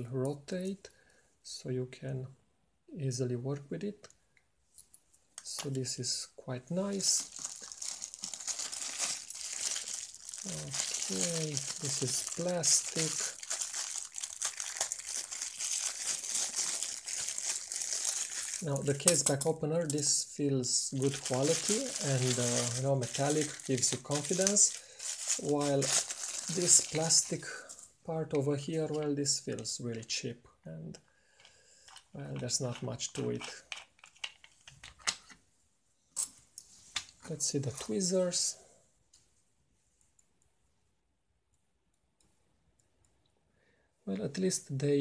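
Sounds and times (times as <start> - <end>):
plastic wrap crinkling: 6.8 - 19.3, 20.9 - 27.8.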